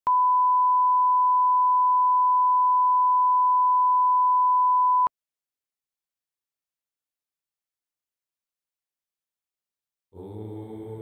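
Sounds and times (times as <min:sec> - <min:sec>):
steady test tone beep: 0:00.1 - 0:05.1.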